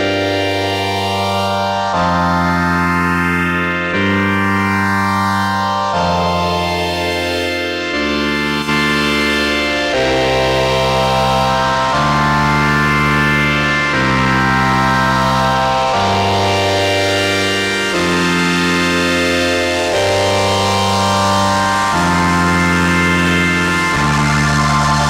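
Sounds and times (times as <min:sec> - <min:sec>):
string synthesizer chords: 0:00.0 - 0:25.0.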